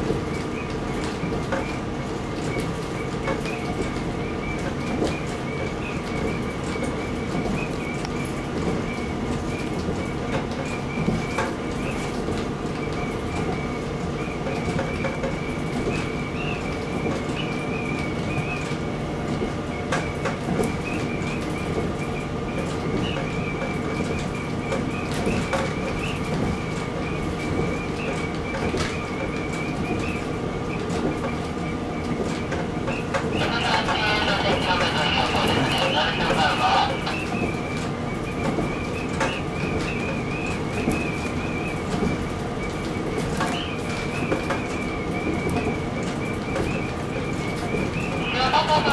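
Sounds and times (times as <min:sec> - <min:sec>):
diesel railcar engine hum: 0:00.0 - 0:28.3, 0:32.6 - 0:46.1, 0:46.8 - 0:48.9.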